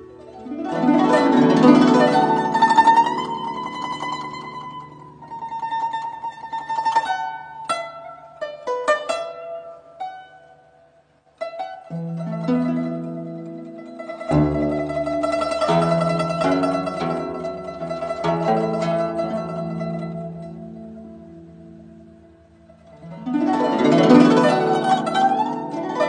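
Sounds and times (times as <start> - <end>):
plucked zither: 0.0 - 26.0.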